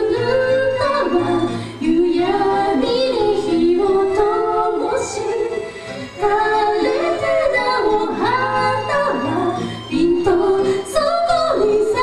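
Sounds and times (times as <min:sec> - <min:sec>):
woman singing with vibrato: 0:00.0 - 0:05.6, 0:06.2 - 0:12.0
acoustic band playing: 0:00.0 - 0:12.0.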